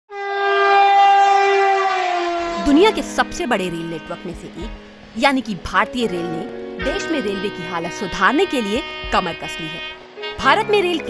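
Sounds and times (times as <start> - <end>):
train horn long note: 0.1 - 5.1, 6.1 - 11.0.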